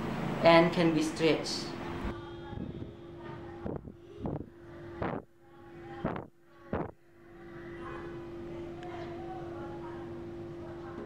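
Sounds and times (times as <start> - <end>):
low hum: 1.7 - 11.0.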